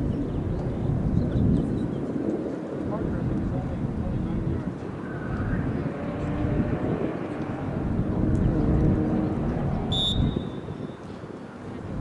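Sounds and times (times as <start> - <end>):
distant voices: 0.0 - 12.0
referee's whistle blast: 9.9 - 10.6.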